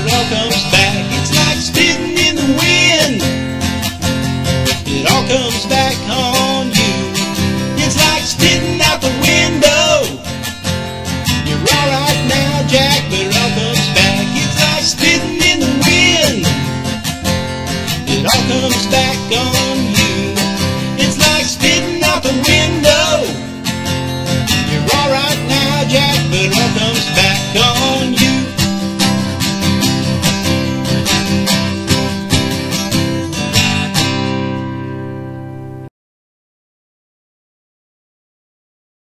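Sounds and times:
acoustic guitar strumming: 0:00.0 - 0:35.9.

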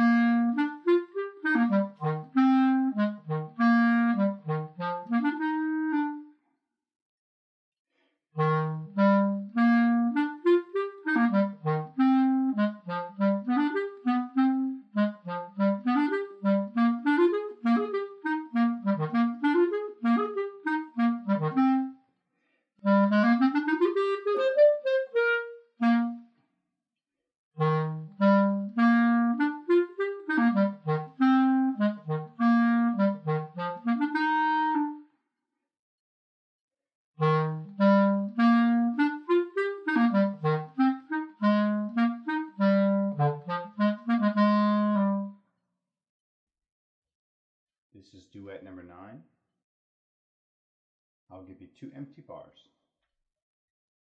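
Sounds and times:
clarinet playing: 0:00.0 - 0:06.4, 0:08.4 - 0:22.0, 0:22.8 - 0:26.3, 0:27.6 - 0:35.1, 0:37.2 - 0:45.4.

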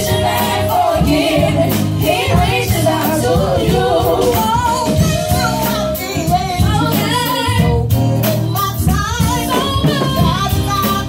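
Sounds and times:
musical accompaniment: 0:00.0 - 0:11.0
women singing gospel: 0:00.0 - 0:11.0.

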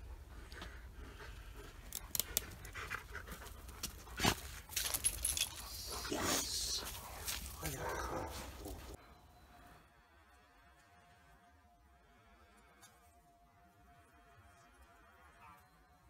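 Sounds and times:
dog panting: 0:00.0 - 0:07.6
movement over dirt and leaves: 0:00.4 - 0:09.0.

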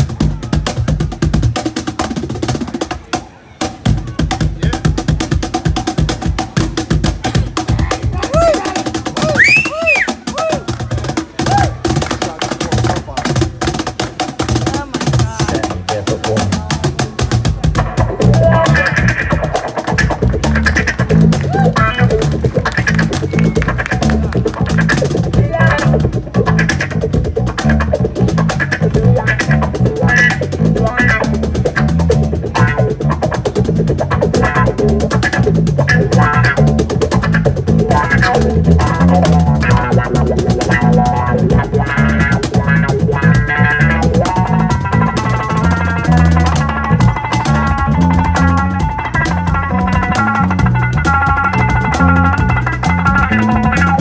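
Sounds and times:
cigar box guitars playing: 0:05.4 - 0:54.0.

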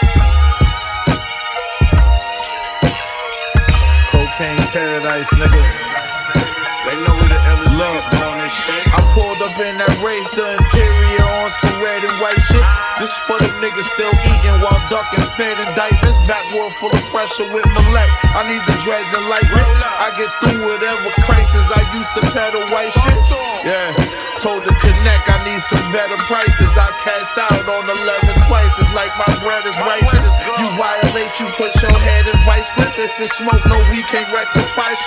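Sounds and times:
deep bass hits: 0:00.0 - 0:00.8, 0:03.6 - 0:04.4, 0:07.1 - 0:07.9, 0:08.9 - 0:09.3, 0:10.6 - 0:11.4, 0:14.2 - 0:14.9, 0:15.9 - 0:16.3, 0:17.7 - 0:18.4, 0:21.2 - 0:21.9, 0:23.0 - 0:23.4, 0:24.7 - 0:25.5, 0:26.5 - 0:26.9, 0:28.2 - 0:29.0, 0:30.0 - 0:30.4, 0:31.8 - 0:32.7
hip hop beat: 0:00.0 - 0:35.0
person rapping: 0:03.6 - 0:35.0.

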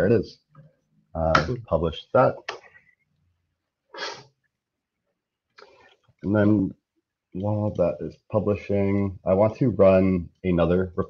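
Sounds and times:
person sneezing or snorting: 0:03.9 - 0:04.3.

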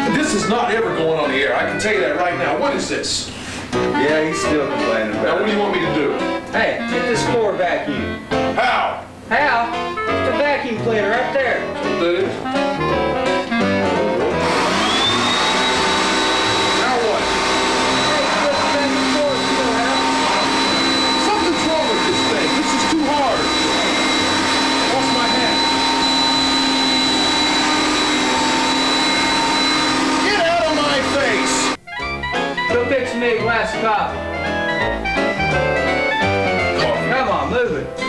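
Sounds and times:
vacuum cleaner motor whine: 0:14.2 - 0:31.8.

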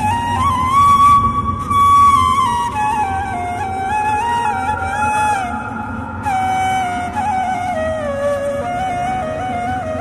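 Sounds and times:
low musical accompaniment: 0:00.0 - 0:10.0
solo flute melody: 0:00.0 - 0:10.0.

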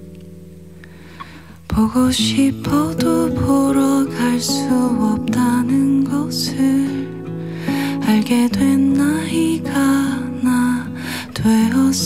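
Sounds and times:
fingerpicked acoustic guitar: 0:00.0 - 0:12.0
woman singing: 0:01.7 - 0:12.0.

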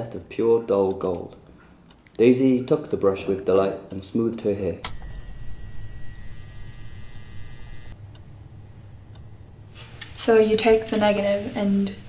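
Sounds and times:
electrical mains hum: 0:00.0 - 0:12.0
faint high whine: 0:04.9 - 0:10.8.

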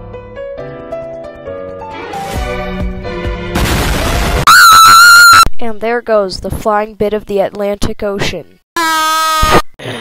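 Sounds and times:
explosion rumbling: 0:03.5 - 0:04.5
high-pitched scream: 0:04.5 - 0:05.5, 0:08.8 - 0:09.7.

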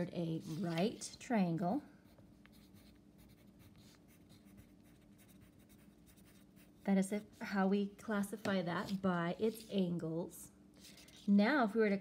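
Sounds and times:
pencil scratching on paper: 0:02.4 - 0:07.4.

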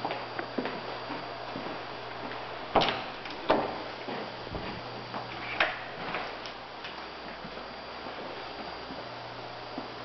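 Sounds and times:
footsteps on hard floor: 0:00.0 - 0:05.4.

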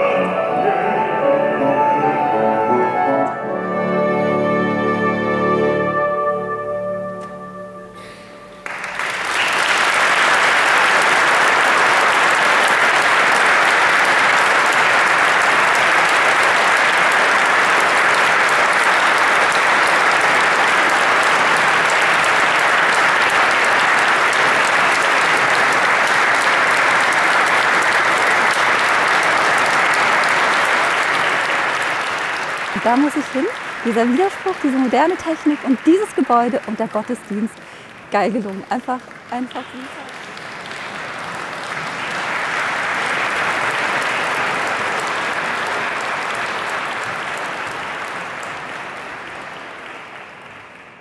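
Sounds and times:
music: 0:00.0 - 0:09.0
audience applauding: 0:08.5 - 0:51.0.

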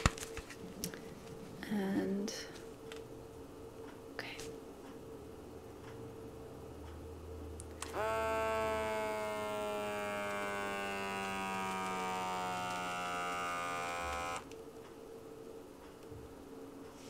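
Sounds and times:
small electric pump buzzing: 0:07.7 - 0:14.6.

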